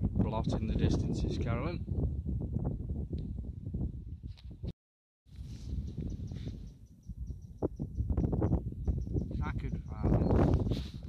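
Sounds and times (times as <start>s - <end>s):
wind buffeting microphone: 0.0s - 4.7s, 5.3s - 11.0s.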